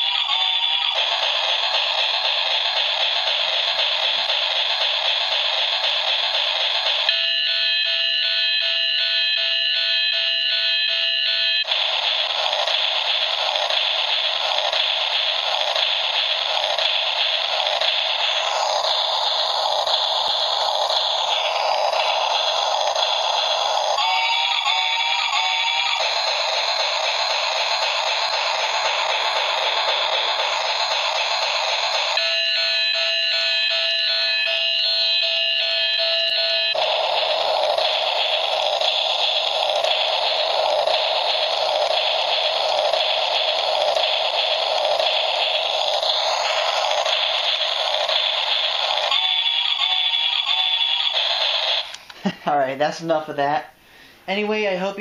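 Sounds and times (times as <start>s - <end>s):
warbling electronic tone: 10.7s - 51.9s.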